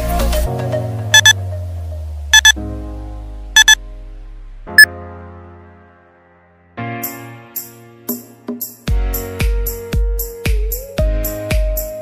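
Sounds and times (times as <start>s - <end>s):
background music: 0.0s - 12.0s
electronic timer beeps: 1.2s - 1.4s, 2.4s - 2.6s, 3.6s - 3.8s.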